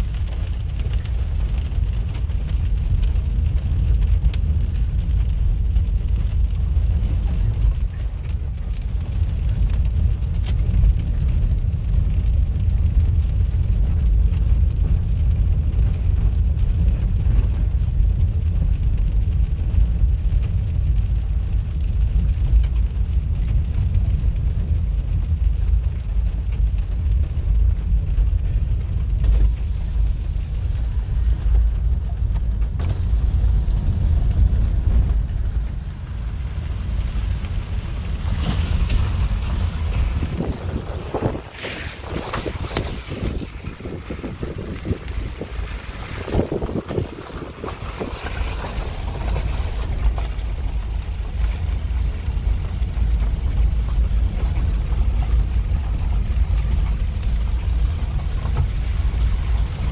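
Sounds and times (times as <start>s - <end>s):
scattered crackles: 0.0s - 59.9s
tyres rumbling on dirt road: 0.0s - 59.9s
hiss of outside air: 26.4s - 59.9s.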